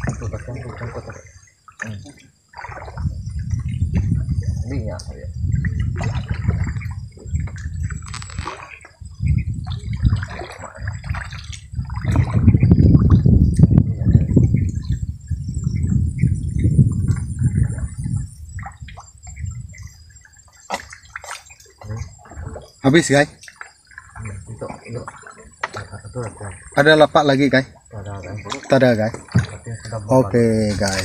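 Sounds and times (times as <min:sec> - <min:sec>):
water splashing and dripping: 0:00.0 - 0:31.0.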